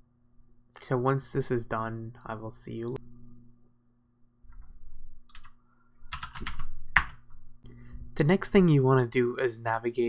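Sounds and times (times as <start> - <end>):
computer keyboard typing: 5.3 - 7.2.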